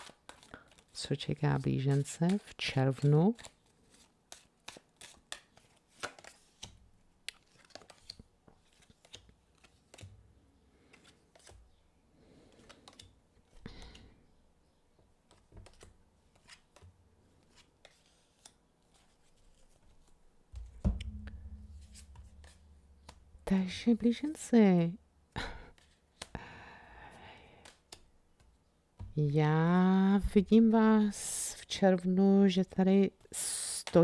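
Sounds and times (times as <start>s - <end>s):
cards clicking and sliding on table: 1.9s - 10.1s, 10.8s - 11.6s, 12.4s - 14.1s, 15.2s - 20.7s, 21.8s - 23.2s
low hum: 20.6s - 23.6s.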